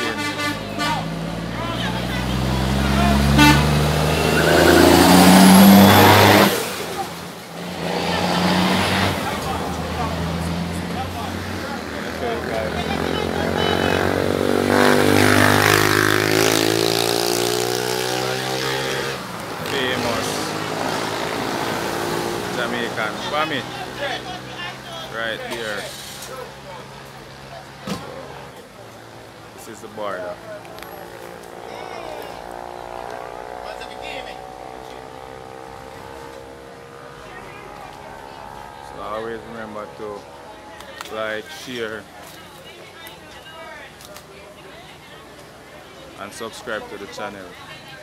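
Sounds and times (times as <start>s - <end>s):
cars driving past: 0.0s - 48.0s
people's voices: 0.0s - 48.0s.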